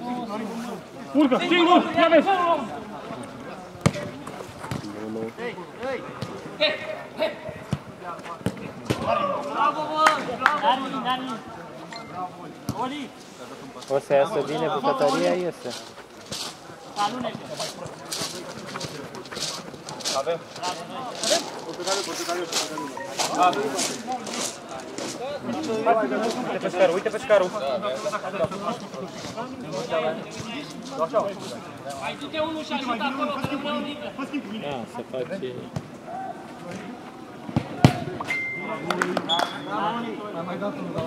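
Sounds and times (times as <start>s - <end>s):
men calling and shouting: 0.0s - 41.0s.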